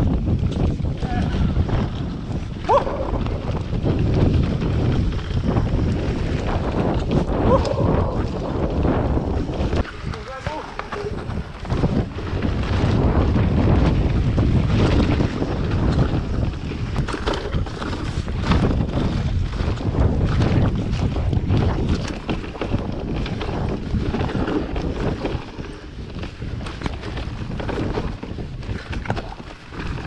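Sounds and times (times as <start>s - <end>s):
bike rattles and knocks: 0.0s - 30.0s
tyre rumble: 0.0s - 30.0s
wind rushing over microphone: 0.0s - 30.0s.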